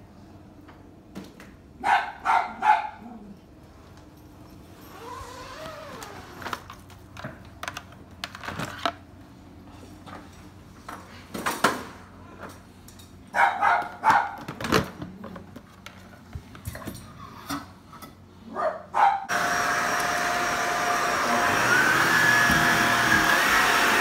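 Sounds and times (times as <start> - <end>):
dog barking: 1.8 - 3.1, 13.3 - 14.4, 18.5 - 19.3.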